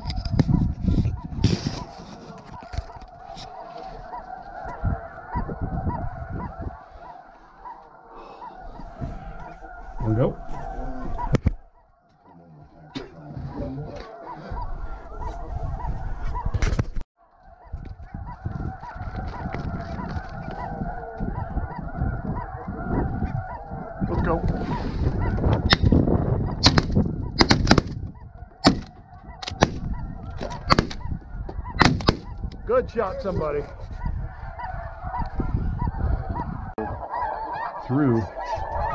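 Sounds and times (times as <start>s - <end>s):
wind on microphone: 0.0s - 7.1s, 13.3s - 17.0s, 17.6s - 38.9s
geese honking: 0.0s - 38.9s.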